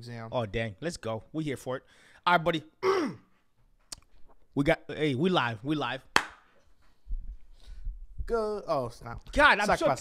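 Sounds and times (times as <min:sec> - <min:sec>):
sharp smack: 0:06.2 - 0:06.5.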